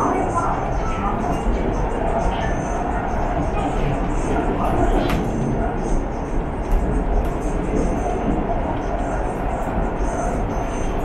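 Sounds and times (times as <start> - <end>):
train wheels rumbling on rail: 0.0 - 11.0.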